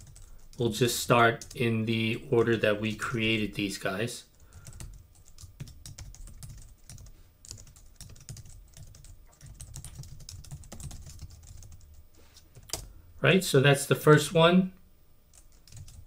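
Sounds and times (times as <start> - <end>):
typing on a keyboard: 0.0 - 0.6, 4.5 - 12.0, 15.3 - 16.0.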